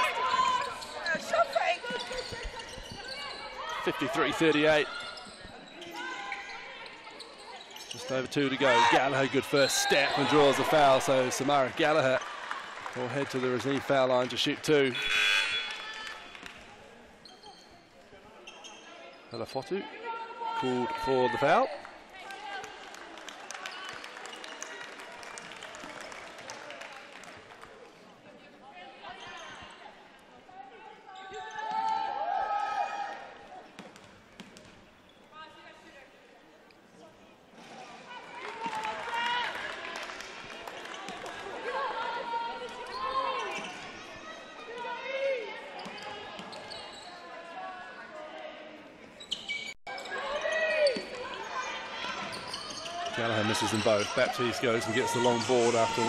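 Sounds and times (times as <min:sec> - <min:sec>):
crowd chatter echoing: 0:49.9 - 0:56.0.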